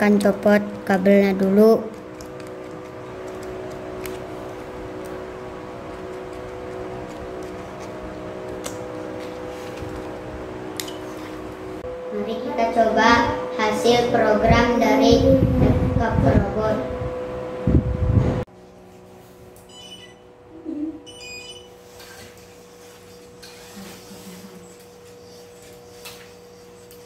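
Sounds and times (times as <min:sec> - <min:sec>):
fan or motor humming: 0:00.0 - 0:27.0
low rumbling noise: 0:11.6 - 0:18.5.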